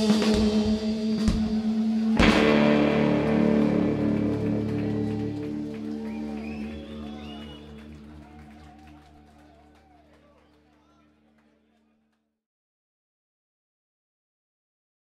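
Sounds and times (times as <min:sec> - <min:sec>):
loud drum hit: 0:00.0 - 0:05.2
electric guitar chord ringing: 0:00.0 - 0:08.1.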